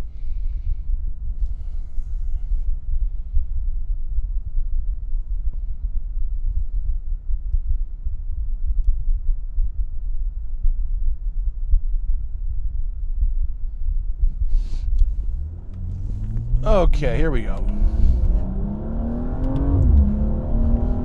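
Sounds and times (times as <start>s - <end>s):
car engine idling: 14.7s - 21.0s.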